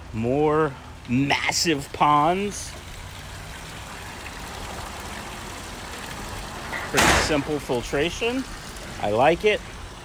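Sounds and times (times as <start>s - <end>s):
water splashing from a pipe: 0.0s - 10.0s.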